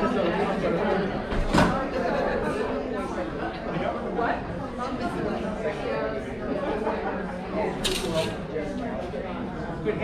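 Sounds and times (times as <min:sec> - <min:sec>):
spectator chatter: 0:00.0 - 0:10.0.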